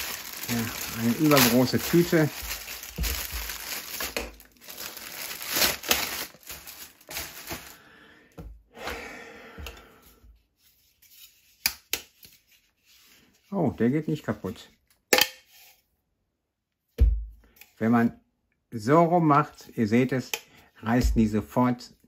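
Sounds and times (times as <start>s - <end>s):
plastic bag tearing and crinkling: 0.0s - 7.8s.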